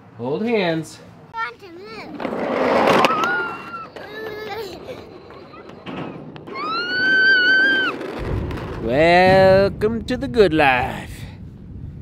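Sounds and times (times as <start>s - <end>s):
child's high-pitched squeal: 2.9s - 5.8s, 6.5s - 8.1s.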